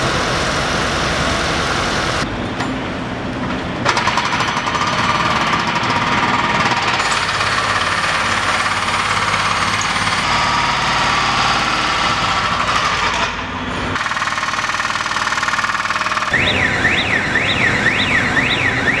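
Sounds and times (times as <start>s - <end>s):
pneumatic breaker rattling: 3.8s - 16.6s
warbling electronic alarm: 15.6s - 19.0s.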